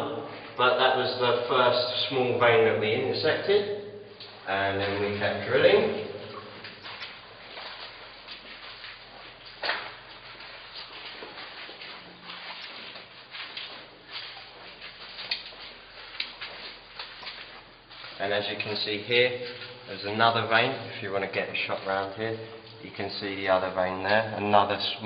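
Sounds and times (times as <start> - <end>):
footsteps on rock floor: 6.3 - 18.8.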